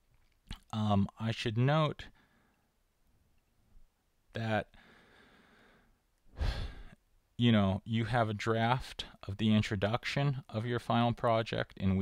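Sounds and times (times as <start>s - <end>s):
man speaking: 0.6s - 2.1s, 4.4s - 4.7s, 7.4s - 12.0s
man breathing: 4.7s - 7.0s.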